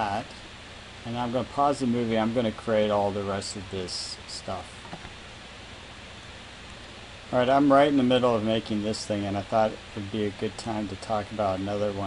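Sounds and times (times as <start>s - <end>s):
faint low hum: 0.0s - 12.0s
steady microphone hiss: 0.0s - 12.0s.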